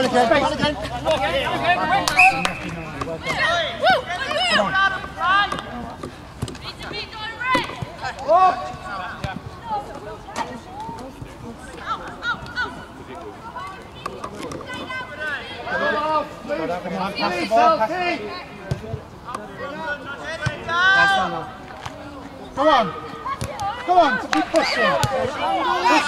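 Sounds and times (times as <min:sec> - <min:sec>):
young players shouting: 0:00.2 - 0:05.8, 0:14.6 - 0:18.6, 0:19.6 - 0:21.5, 0:22.5 - 0:26.0.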